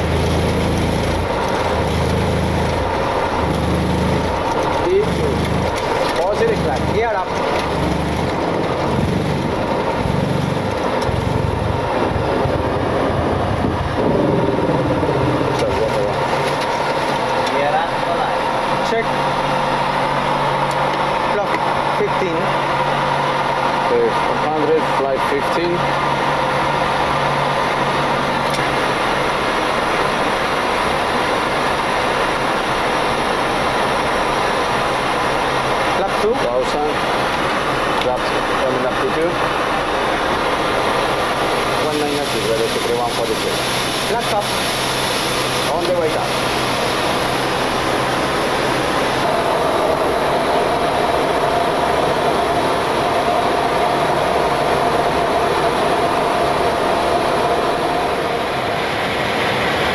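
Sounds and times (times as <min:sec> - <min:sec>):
airflow and jet engine rush: 0:00.0 - 0:59.9
constant high hum: 0:00.0 - 0:59.9.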